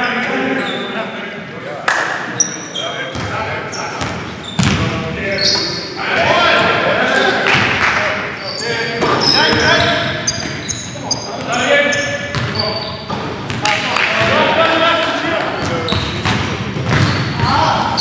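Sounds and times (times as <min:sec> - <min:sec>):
players' voices: 0:00.0 - 0:18.0
sneakers squeaking on floor: 0:00.5 - 0:01.0, 0:02.3 - 0:06.0, 0:08.3 - 0:14.4, 0:15.4 - 0:18.0
basketball bouncing on hardwood: 0:15.9 - 0:17.2.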